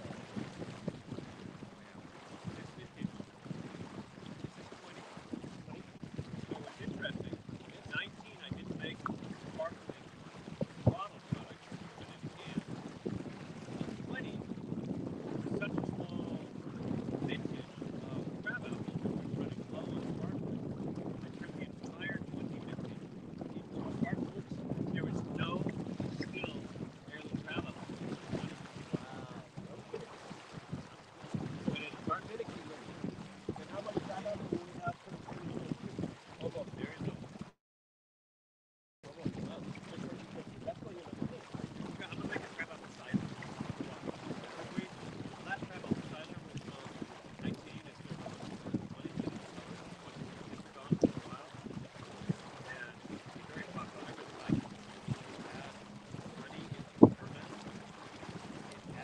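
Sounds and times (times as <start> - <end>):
wind buffeting microphone: 0.0 - 37.5, 39.0 - 59.0
water moving along hull: 0.0 - 37.6, 39.0 - 59.0
muffled indistinct talk: 23.6 - 30.1, 31.7 - 35.7, 39.0 - 48.0, 52.6 - 57.7.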